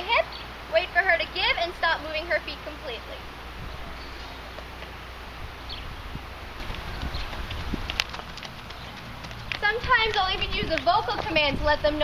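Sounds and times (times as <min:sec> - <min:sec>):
low outdoor rumble: 0:00.0 - 0:12.0
horse hooves on soft dirt: 0:06.6 - 0:12.0.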